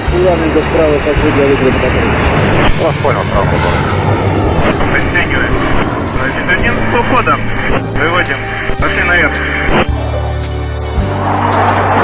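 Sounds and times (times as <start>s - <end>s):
voices: 0.0s - 10.0s
jet engines roaring overhead: 0.0s - 12.0s.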